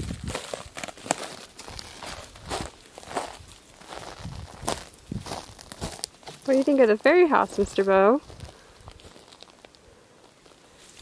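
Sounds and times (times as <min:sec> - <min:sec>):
footsteps on pine needles: 0:00.0 - 0:11.0.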